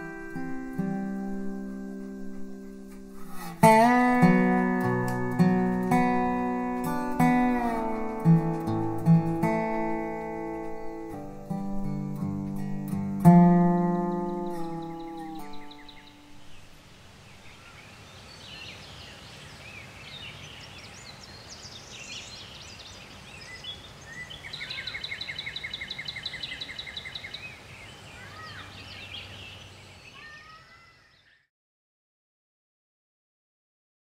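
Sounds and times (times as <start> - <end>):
resophonic guitar notes ringing: 0.0 - 16.6
faint outdoor hush: 0.0 - 31.3
birds chirping: 0.0 - 31.5
bird trill: 13.2 - 16.7, 17.3 - 31.5.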